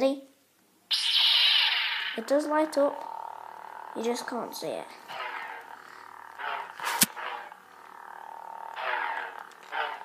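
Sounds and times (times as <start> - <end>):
lightsaber swing sounds: 0.9 - 10.0
toy lightsaber hum: 0.9 - 10.0.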